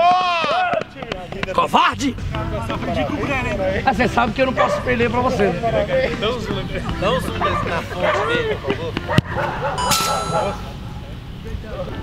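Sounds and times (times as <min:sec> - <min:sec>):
ringing metallic clang: 0:09.8 - 0:10.8.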